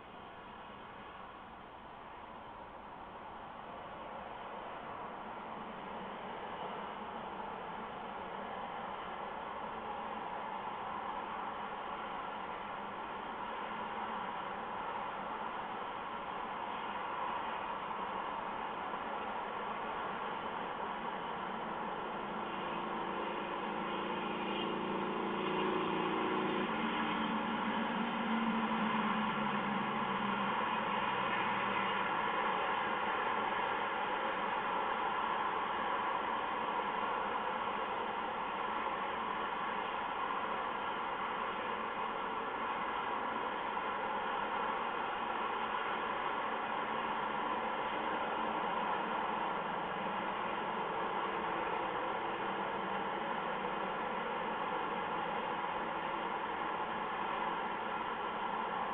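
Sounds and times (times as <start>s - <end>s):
low drone: 0.0s - 58.9s
microphone hiss and static: 0.0s - 58.9s.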